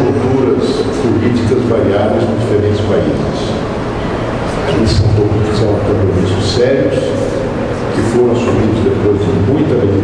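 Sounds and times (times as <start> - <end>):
man speaking into a microphone: 0.0 - 3.7, 4.6 - 10.0.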